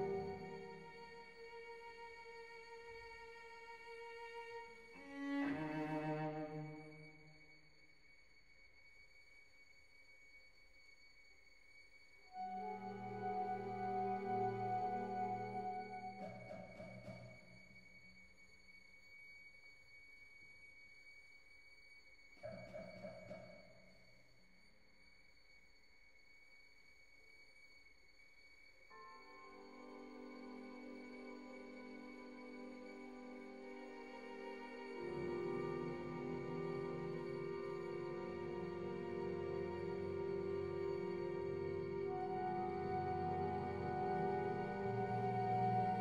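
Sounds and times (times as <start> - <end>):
faint high-pitched tone: 0.0 - 46.0
orchestral chord: 34.6 - 46.0.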